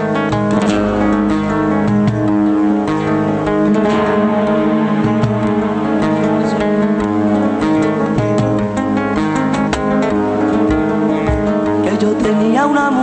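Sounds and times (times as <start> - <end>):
flamenco guitars playing: 0.0 - 13.0.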